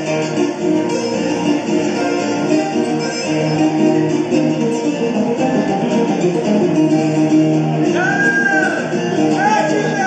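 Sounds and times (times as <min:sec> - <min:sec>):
acoustic guitar accompaniment: 0:00.0 - 0:10.0
fast plucked string solo: 0:00.0 - 0:10.0.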